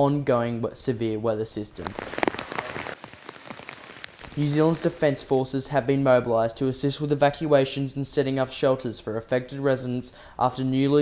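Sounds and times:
heavy rain on water: 1.9 - 5.0.

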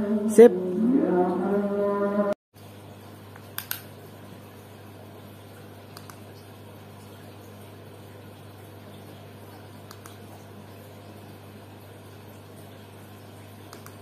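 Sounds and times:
aquarium pumps humming and bubbling: 0.0 - 14.0
small clicks: 3.4 - 3.9, 5.9 - 6.2, 9.9 - 10.2, 13.7 - 14.0.

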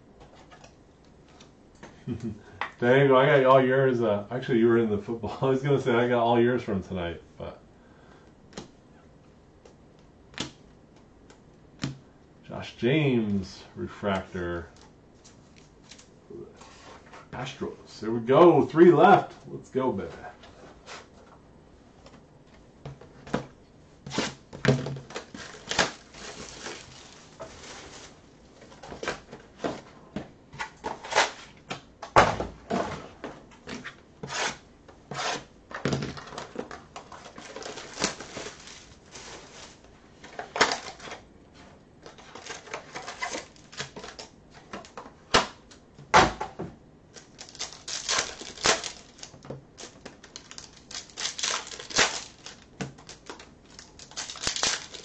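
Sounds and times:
card pack wrappers tearing: 25.1 - 28.2, 36.9 - 39.8, 42.1 - 44.3, 47.2 - 55.0.

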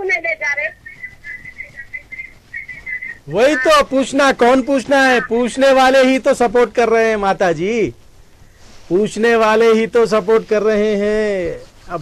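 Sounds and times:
high whistling tone on phone line: 0.2 - 5.4.

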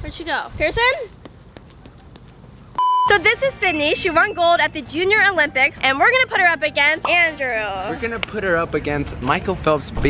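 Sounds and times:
electronic test-tone beep: 2.8 - 4.4.

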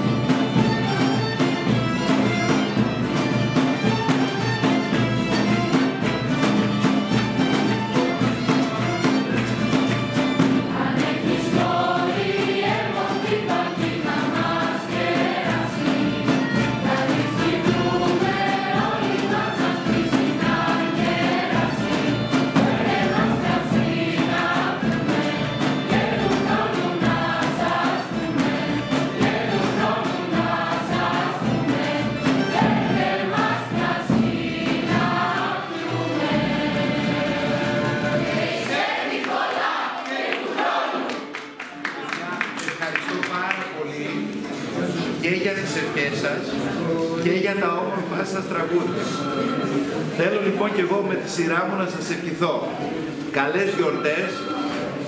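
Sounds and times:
violin ensemble playing: 0.0 - 38.7, 44.2 - 55.0
youth choir singing carols: 0.0 - 41.6, 44.2 - 55.0
people clapping: 4.4 - 16.6, 38.2 - 45.2.

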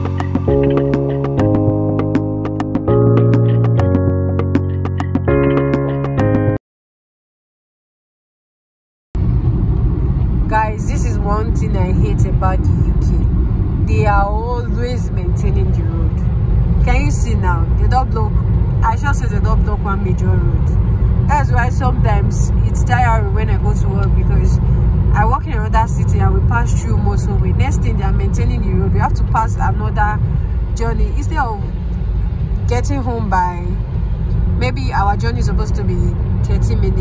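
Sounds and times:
car engine and tyre rumble: 0.0 - 6.0, 9.2 - 37.0
person talking: 10.5 - 13.3, 13.9 - 16.2, 21.3 - 24.6.

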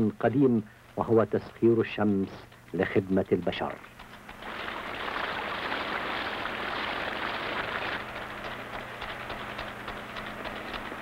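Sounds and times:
droplets ticking: 0.1 - 11.0
water sprinkler hissing: 0.3 - 11.0.

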